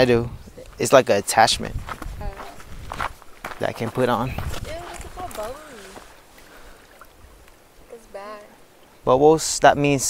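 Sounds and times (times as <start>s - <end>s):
wind: 0.0s - 10.0s
lake waves lapping at shore: 2.4s - 9.0s.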